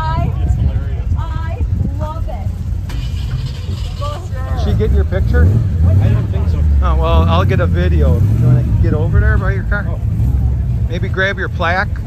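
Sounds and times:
people talking: 0:00.0 - 0:02.6, 0:03.9 - 0:10.0, 0:10.9 - 0:12.0
steady low rumble: 0:00.0 - 0:12.0.

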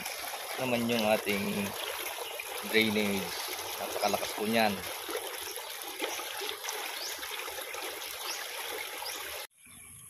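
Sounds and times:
water gushing from a pipe: 0:00.0 - 0:09.5
water splashing into shallow water: 0:00.0 - 0:09.5.

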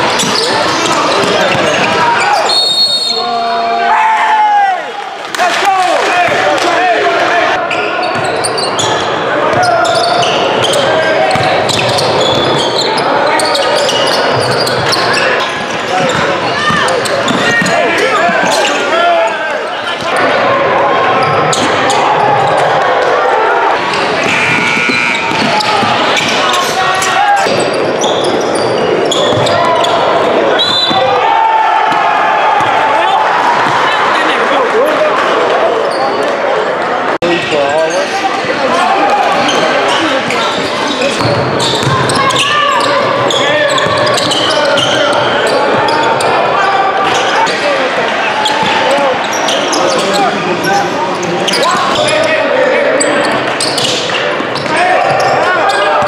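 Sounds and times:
sneakers squeaking: 0:00.0 - 0:03.4, 0:07.5 - 0:20.4, 0:21.1 - 0:23.1, 0:23.7 - 0:31.3, 0:37.4 - 0:56.0
people calling out and talking: 0:00.0 - 0:56.0.

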